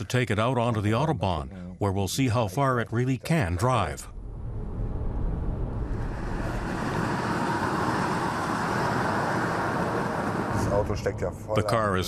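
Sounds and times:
low rumble: 4.0s - 9.0s.

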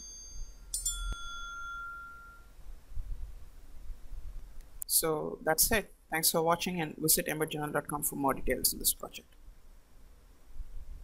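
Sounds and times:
metal bell ringing: 0.0s - 2.6s.

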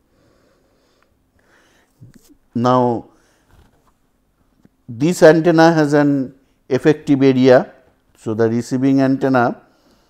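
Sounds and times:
man speaking: 2.2s - 3.2s, 4.9s - 9.6s.

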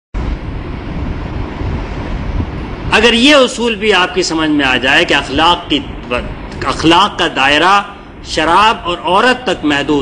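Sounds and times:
low rumble: 0.2s - 3.1s.

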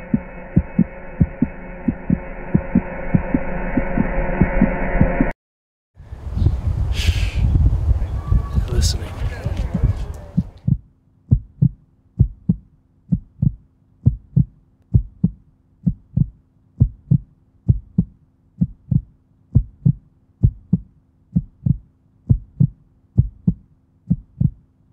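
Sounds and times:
heartbeat double thump: 0.0s - 5.3s, 7.5s - 24.6s.

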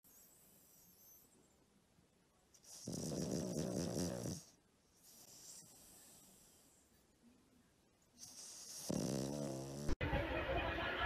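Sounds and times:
dog snoring: 2.6s - 6.7s, 8.2s - 10.0s.

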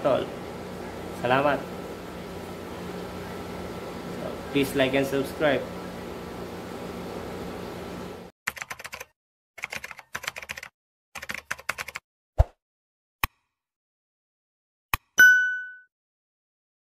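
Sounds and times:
room hum: 0.0s - 8.3s
keyboard typing clicks: 8.5s - 12.0s.

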